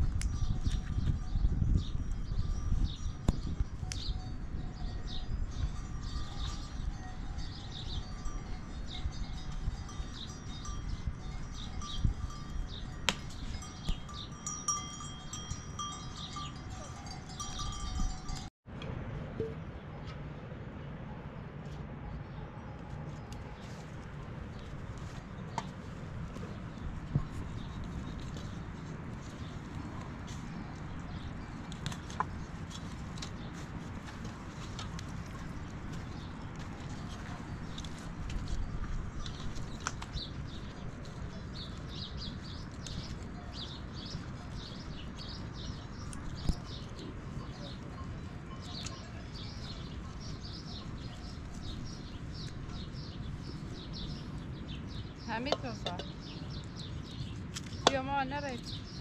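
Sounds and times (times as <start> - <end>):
livestock bells ringing: 0.0 - 18.5, 38.4 - 40.9
steady outdoor hum: 0.0 - 59.0.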